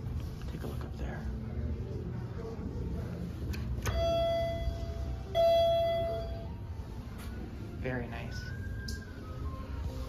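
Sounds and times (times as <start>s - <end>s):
elevator arrival chime: 3.8s - 6.7s.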